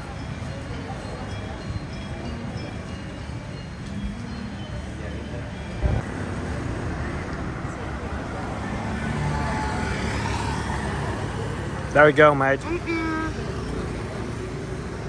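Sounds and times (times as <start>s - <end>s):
indistinct voices: 0.0s - 15.0s
scooters and cars passing: 0.0s - 15.0s.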